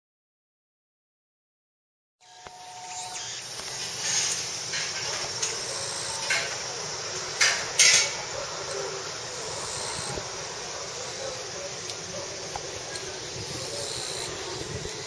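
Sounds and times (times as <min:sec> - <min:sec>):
gondola cable hiss: 0:02.2 - 0:15.0.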